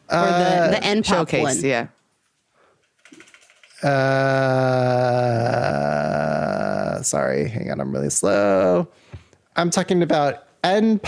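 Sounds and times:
keyboard typing: 0:02.8 - 0:03.8.

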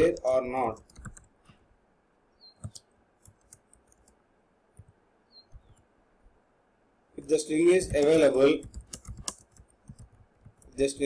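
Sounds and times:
keyboard typing clicks: 0:00.0 - 0:01.3, 0:02.5 - 0:04.2, 0:04.8 - 0:05.9, 0:07.7 - 0:11.0.

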